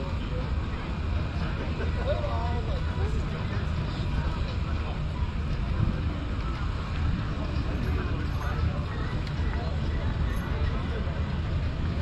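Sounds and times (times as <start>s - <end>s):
faint voices talking: 0.0s - 12.0s
steady low rumble: 0.0s - 12.0s.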